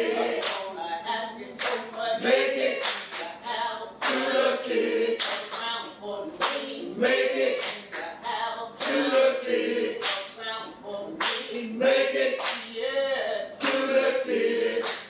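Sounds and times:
group singing a hymn: 0.0s - 15.0s
hand clapping on the beat: 0.4s - 0.7s, 1.6s - 2.1s, 2.7s - 3.4s, 4.0s - 4.4s, 5.2s - 5.8s, 6.4s - 6.8s, 7.5s - 8.2s, 8.8s - 9.4s, 10.0s - 10.4s, 11.2s - 12.7s, 13.6s - 14.0s, 14.7s - 15.0s.

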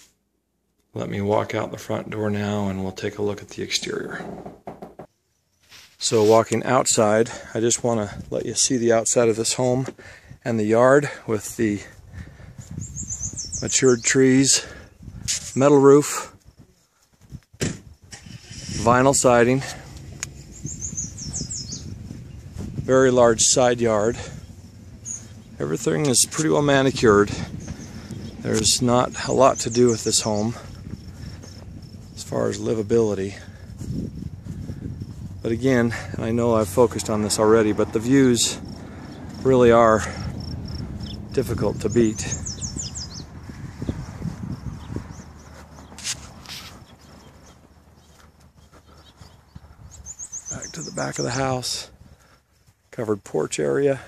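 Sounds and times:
faint birdsong: 0.7s - 17.2s, 17.9s - 54.0s
low rumbling outdoor noise: 18.1s - 52.5s.

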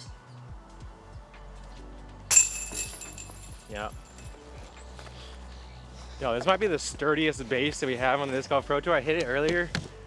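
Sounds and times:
disc striking basket chains: 2.3s - 4.5s.

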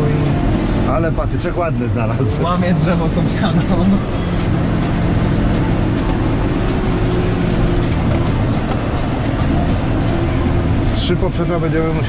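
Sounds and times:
tractor engine drone: 0.0s - 12.0s.

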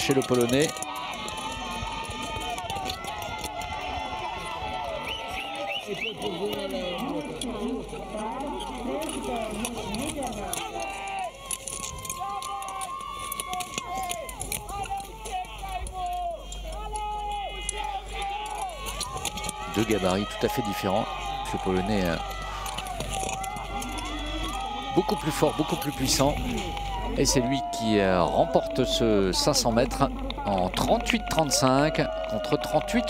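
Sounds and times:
crowd shouting encouragement: 0.0s - 33.0s.

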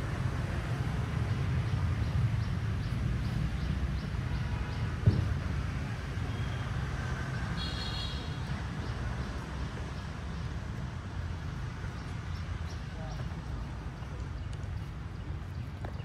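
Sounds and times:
distant city traffic rumble: 0.0s - 16.0s.

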